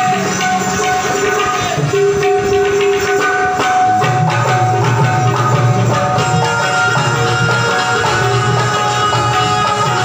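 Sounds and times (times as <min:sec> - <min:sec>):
hand drum strokes: 0:00.0 - 0:10.0
harmonium reed notes: 0:04.8 - 0:10.0.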